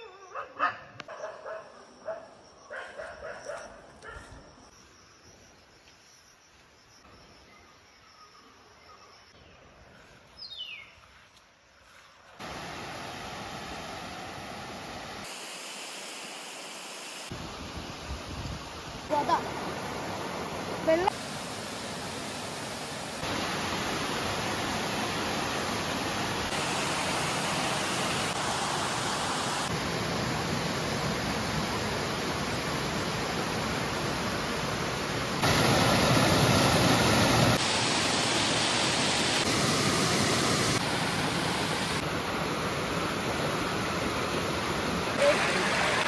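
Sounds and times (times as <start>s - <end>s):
waterfall roaring: 12.4s - 17.6s, 19.1s - 46.0s.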